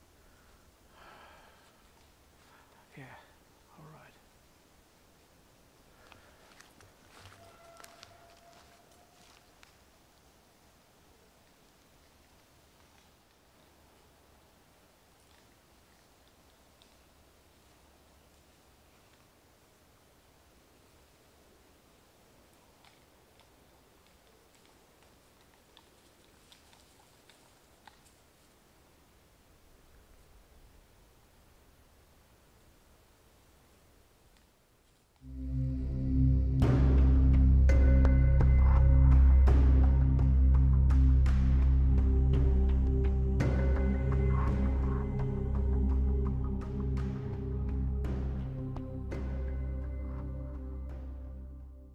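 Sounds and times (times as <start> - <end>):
crackles in undergrowth: 0.0 - 35.6
faint outdoor hiss: 0.0 - 51.9
soft ticks and clicks: 11.4 - 14.1, 15.1 - 19.4, 22.5 - 28.3.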